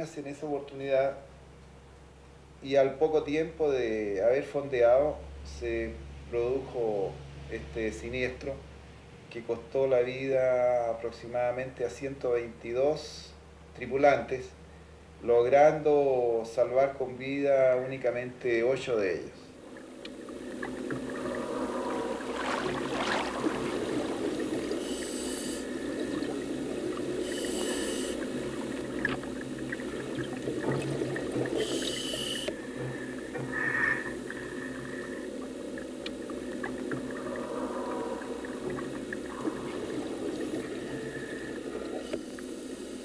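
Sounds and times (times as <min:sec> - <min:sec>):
steady low drone: 0:19.5 - 0:43.0
bubbles: 0:19.7 - 0:33.2, 0:34.1 - 0:42.1
diver breathing through regulator: 0:20.2 - 0:28.8, 0:31.5 - 0:35.6, 0:37.0 - 0:42.6.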